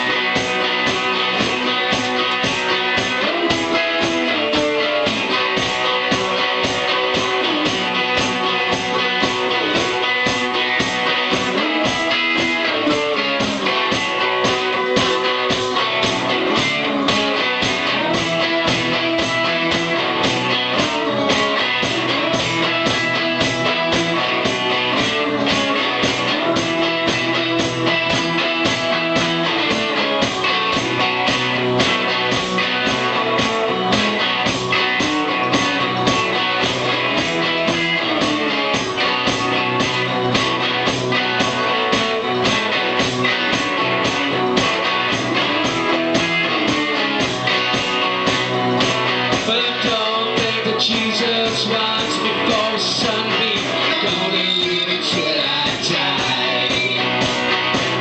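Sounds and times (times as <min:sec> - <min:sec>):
blues rock on guitars: 0:00.0 - 0:58.0
driving drum beat: 0:00.0 - 0:58.0.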